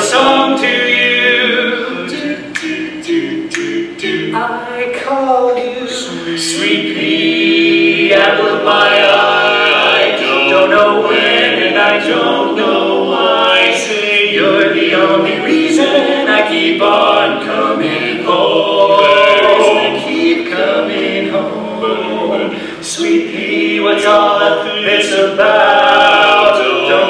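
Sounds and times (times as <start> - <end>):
male quartet singing a cappella: 0.0 - 27.0.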